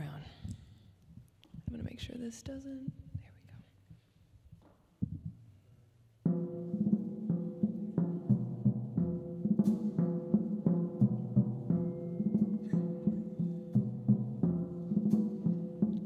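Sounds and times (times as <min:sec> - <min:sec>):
drum kit keeping time: 0:06.3 - 0:16.0
cymbal strikes: 0:06.5 - 0:16.0.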